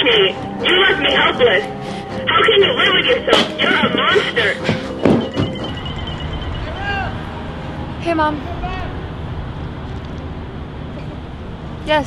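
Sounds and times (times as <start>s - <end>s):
low outdoor rumble: 5.7s - 12.0s.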